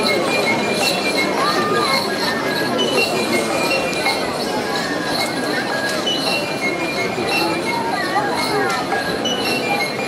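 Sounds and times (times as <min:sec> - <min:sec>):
crowd chatter: 0:00.0 - 0:10.0
shrill steady high tones: 0:00.0 - 0:10.0.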